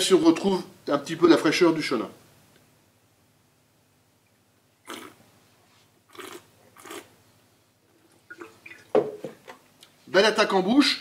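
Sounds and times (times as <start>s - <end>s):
person slurping wine: 4.8s - 5.2s, 6.1s - 7.1s.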